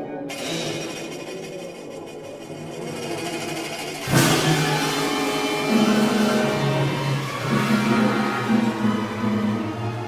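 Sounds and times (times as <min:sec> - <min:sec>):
orchestral music: 0:02.9 - 0:10.0.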